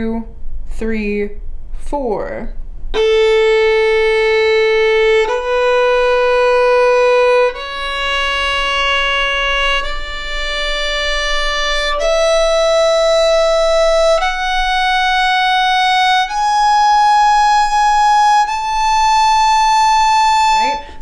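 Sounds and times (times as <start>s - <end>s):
solo violin bowing scale: 2.9s - 21.0s.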